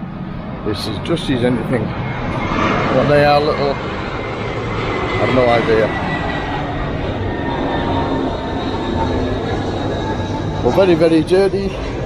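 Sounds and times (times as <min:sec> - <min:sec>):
loud mechanical rumble: 0:00.0 - 0:12.0
thin steady whine: 0:00.0 - 0:12.0.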